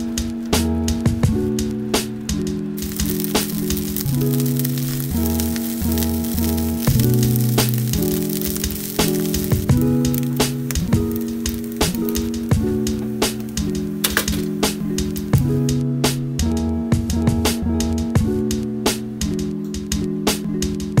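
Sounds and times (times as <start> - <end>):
background music with a beat: 0.0 - 21.0
food sizzling in a pan: 2.8 - 15.5.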